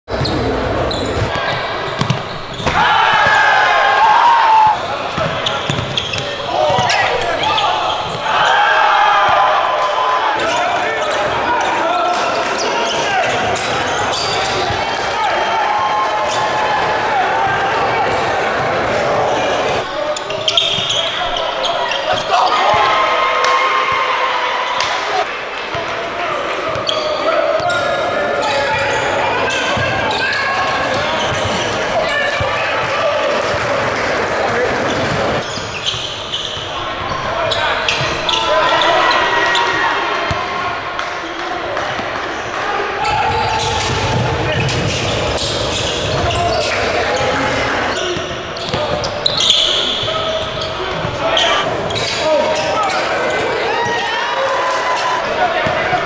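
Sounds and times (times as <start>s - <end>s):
basketballs bouncing on wood floor: 1.2s - 3.4s, 5.2s - 6.9s, 43.6s - 45.3s.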